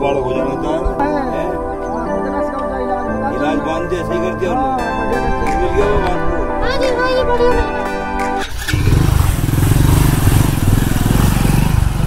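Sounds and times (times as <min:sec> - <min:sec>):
background music: 0:00.0 - 0:09.6
motorcycle engine running: 0:08.4 - 0:12.0.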